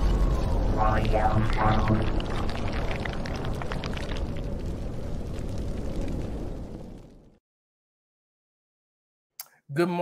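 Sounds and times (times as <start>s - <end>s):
rumbling explosion sound effect: 0.0s - 7.4s.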